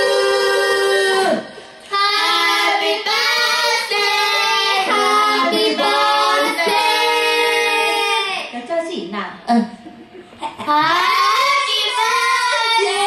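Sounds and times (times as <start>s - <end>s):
women singing a cappella: 0.0s - 8.5s, 10.7s - 13.0s.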